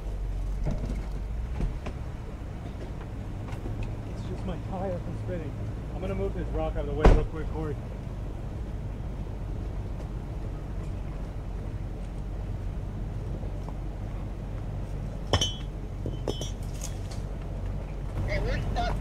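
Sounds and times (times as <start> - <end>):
rock clinking against rock: 15.3 - 17.2.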